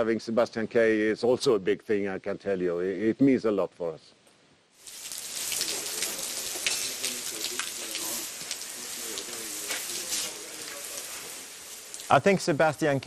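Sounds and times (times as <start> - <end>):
hose water spraying: 4.8 - 13.0
faint men's voices: 5.2 - 13.0.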